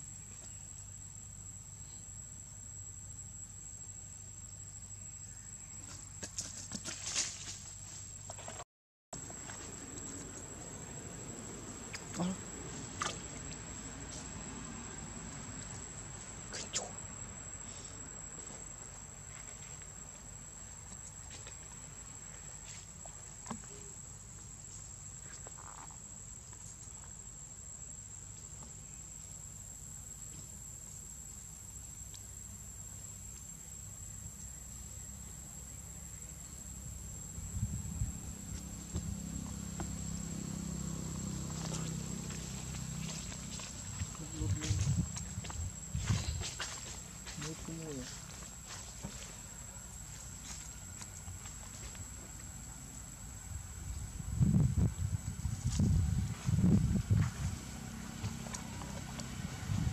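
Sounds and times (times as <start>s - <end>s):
insects calling: 0.0s - 8.6s, 9.2s - 59.9s.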